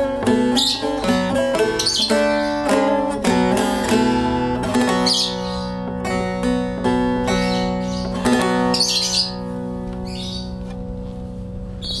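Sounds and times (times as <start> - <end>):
baglama strum ringing: 0.0 - 12.0
high chirps: 7.1 - 10.6.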